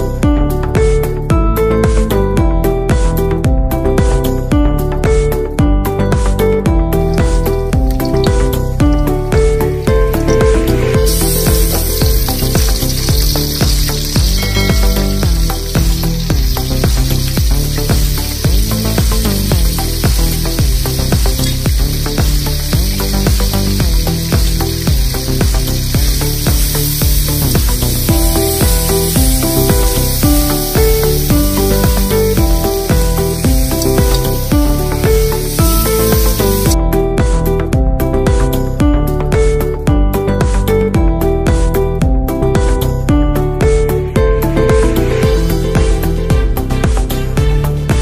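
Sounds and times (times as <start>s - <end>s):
background music: 0.0s - 48.0s
onion frying in hot oil: 7.0s - 36.8s.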